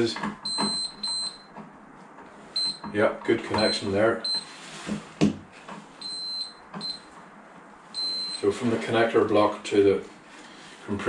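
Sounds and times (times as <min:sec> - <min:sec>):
multimeter beeping: 0:00.4 - 0:01.6, 0:02.6 - 0:02.9, 0:03.5 - 0:04.5, 0:06.0 - 0:07.2, 0:07.9 - 0:08.5.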